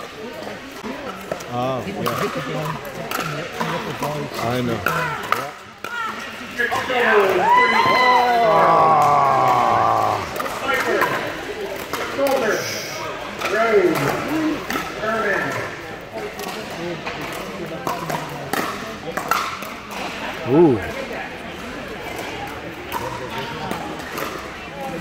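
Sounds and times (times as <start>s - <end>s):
players' voices: 0.0s - 25.0s
paddles hitting plastic balls: 8.5s - 12.5s.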